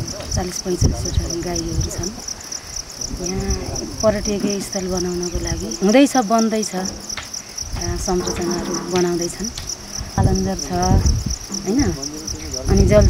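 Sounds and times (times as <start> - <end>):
woman speaking: 0.0 - 2.2, 3.1 - 7.0, 7.8 - 9.6, 10.2 - 12.0, 12.7 - 13.0
insects chirring: 0.0 - 13.0.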